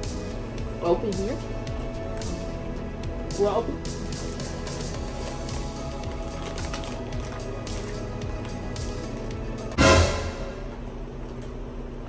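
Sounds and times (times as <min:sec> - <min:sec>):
music with sustained notes: 0:00.0 - 0:10.9
loud hit: 0:09.8 - 0:10.9.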